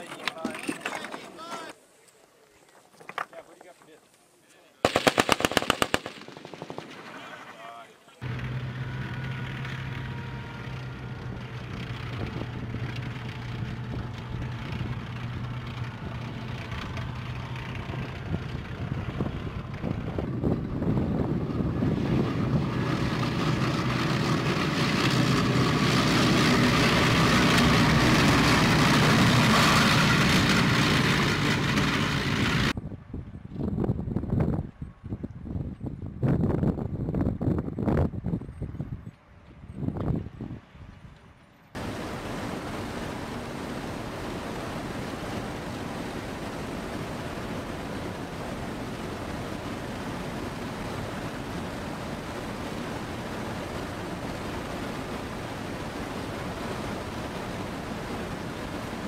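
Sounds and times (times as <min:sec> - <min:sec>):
automatic gunfire: 0:04.8 - 0:07.0
armoured vehicle engine running: 0:08.2 - 0:32.8.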